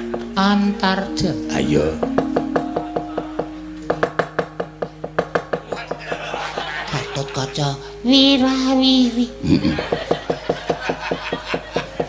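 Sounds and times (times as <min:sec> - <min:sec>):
low ringing gamelan tone: 0:00.0 - 0:12.0.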